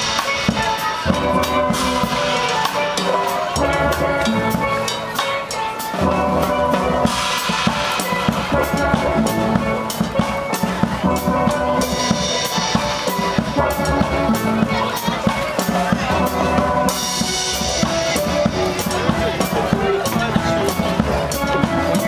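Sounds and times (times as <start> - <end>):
drum kit steady beat: 0.0 - 22.0
steel pans playing melody: 0.0 - 22.0.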